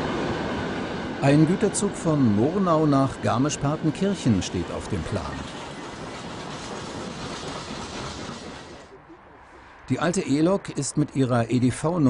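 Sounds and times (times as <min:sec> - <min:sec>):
train wheels running on rails: 0:00.0 - 0:09.0.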